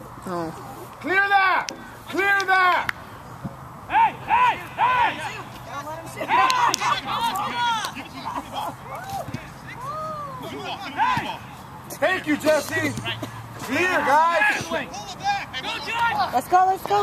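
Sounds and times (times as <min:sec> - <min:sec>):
men shouting and calling out: 0:01.0 - 0:03.2, 0:03.8 - 0:17.0.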